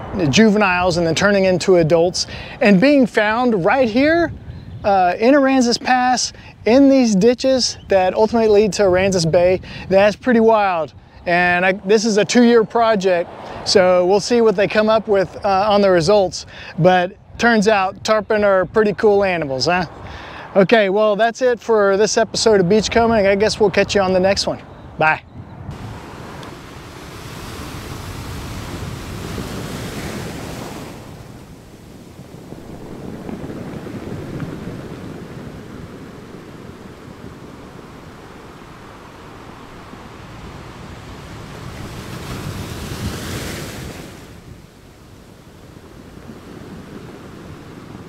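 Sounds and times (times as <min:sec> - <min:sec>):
ocean waves washing: 0:00.0 - 0:48.0.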